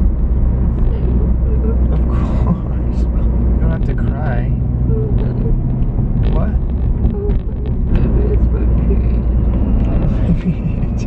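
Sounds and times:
car driving rumble from inside: 0.0 - 11.0
woman's tearful voice: 1.2 - 2.6.

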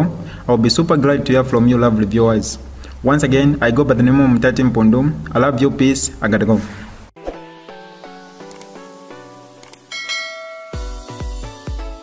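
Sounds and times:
background music: 7.2 - 12.0
bright bell-like ding: 9.9 - 11.2.

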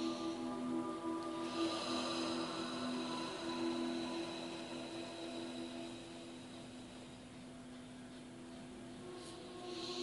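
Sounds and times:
ambient meditation music: 0.0 - 10.0.

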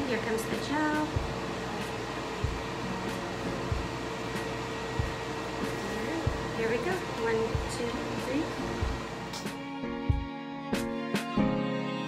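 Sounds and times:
fan whirring hum: 0.0 - 11.5.

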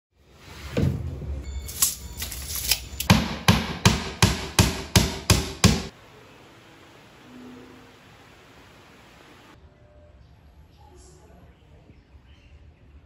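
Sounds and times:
hammer striking wood: 3.1 - 5.9.

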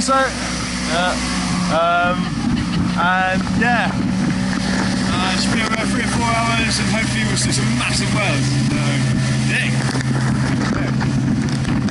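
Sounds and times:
motorboat engine running: 0.0 - 11.9
water rushing past hull: 0.0 - 11.9.

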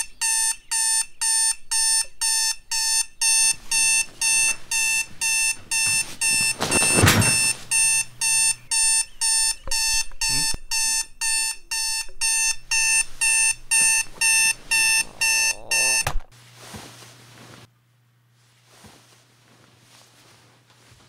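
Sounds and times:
alarm clock beeping: 0.0 - 16.2
rustling noise: 3.5 - 7.9, 12.7 - 15.3, 16.2 - 21.0.

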